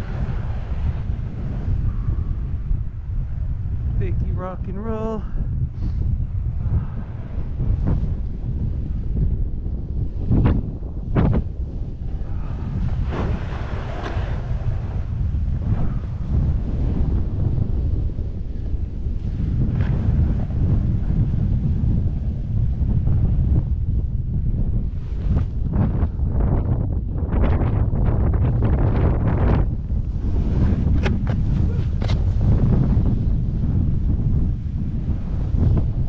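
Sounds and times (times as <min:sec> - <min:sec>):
wind rumbling on microphone: 0:00.0 - 0:36.0
board edges scraping snow: 0:12.9 - 0:14.8, 0:30.2 - 0:32.6.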